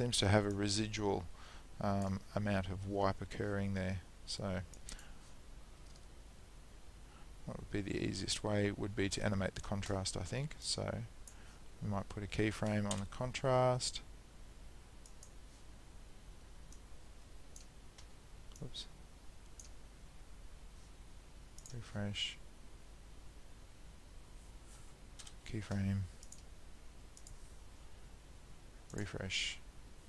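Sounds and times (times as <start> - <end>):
low steady hum: 0.0 - 30.0
faint computer mouse clicks: 15.0 - 15.4, 19.4 - 19.8, 25.2 - 26.5, 27.1 - 27.4.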